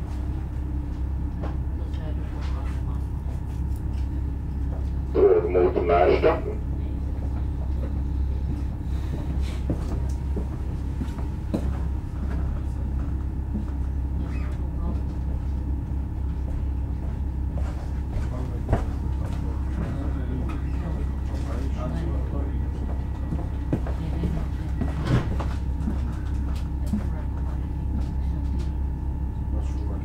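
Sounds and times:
faint high hum: 0.0 - 30.0
train low rumble: 0.0 - 30.0.

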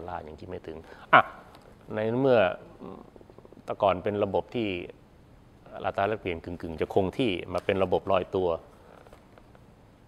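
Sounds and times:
man speaking: 0.0 - 5.0, 5.6 - 8.7.

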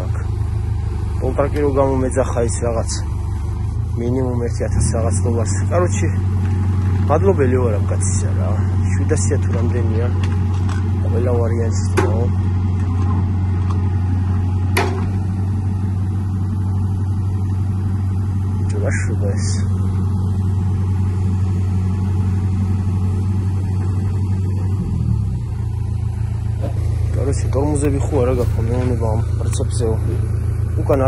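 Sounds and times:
heavy engine humming: 0.0 - 31.0.

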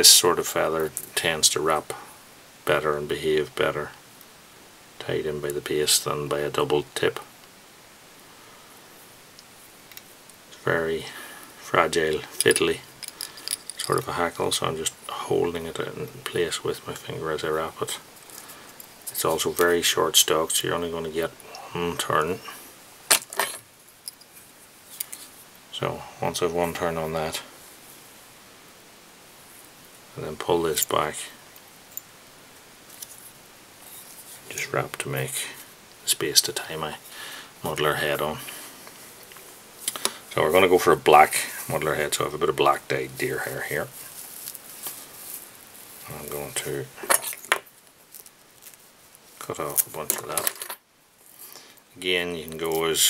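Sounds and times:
metal pliers clinking on hard surface: 12.4 - 14.0.

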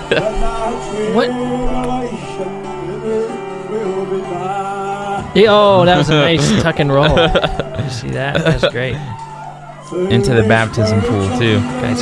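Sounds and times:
man singing: 0.0 - 6.8, 9.8 - 12.0
guitar accompaniment: 0.0 - 12.0.

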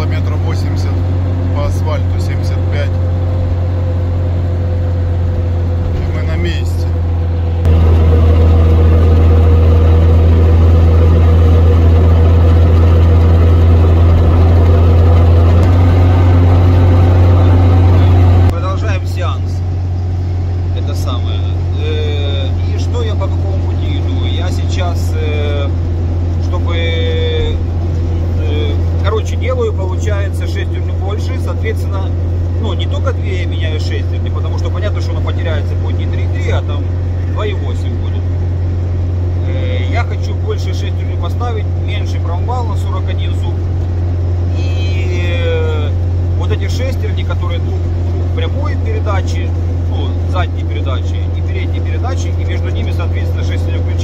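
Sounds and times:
car engine and road hum: 0.0 - 54.0.

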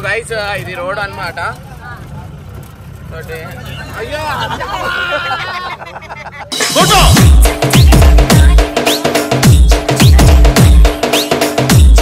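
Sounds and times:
vehicle engine rumble on rough track: 0.0 - 4.6.

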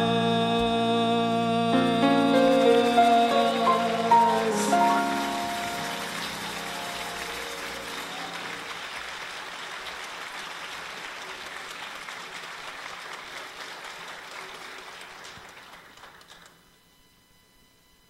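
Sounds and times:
audience applauding: 1.8 - 16.6.

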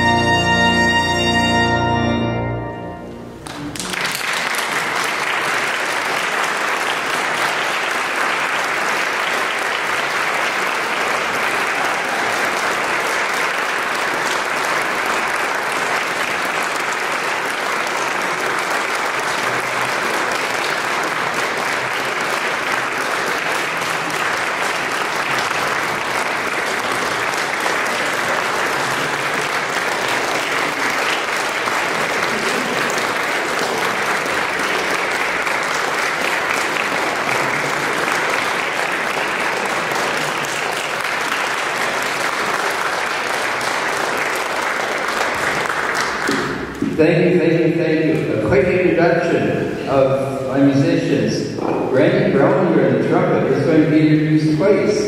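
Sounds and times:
audience applauding: 3.3 - 46.9.

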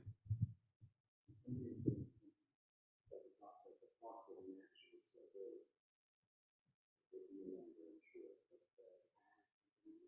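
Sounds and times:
faint muffled voice murmuring: 1.4 - 2.3, 3.1 - 5.7, 7.1 - 10.0.

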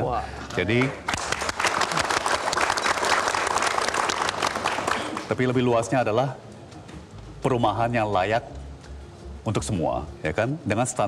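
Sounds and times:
audience applauding: 0.6 - 5.6.

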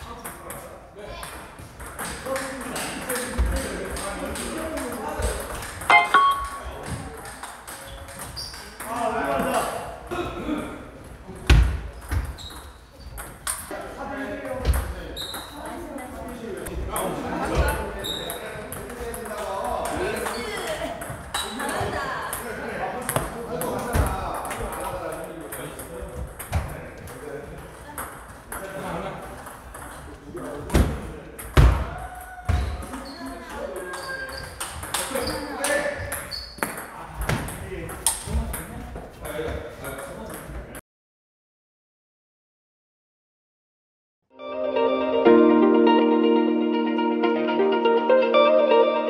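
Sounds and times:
voices in a large hall: 0.0 - 40.8, 44.4 - 49.0.

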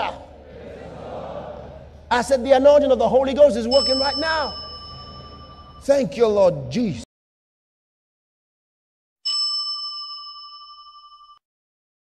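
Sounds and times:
bell ding: 3.7 - 6.3, 9.3 - 11.4.

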